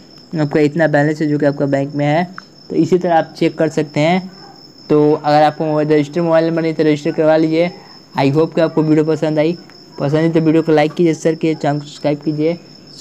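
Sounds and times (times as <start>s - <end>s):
faint high-pitched whine: 0.0s - 13.0s
man speaking: 0.3s - 13.0s.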